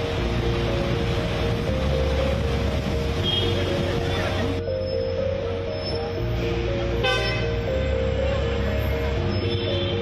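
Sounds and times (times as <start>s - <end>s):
background music with bass: 0.0s - 10.0s
car horn toot: 7.0s - 7.5s, 9.3s - 10.0s.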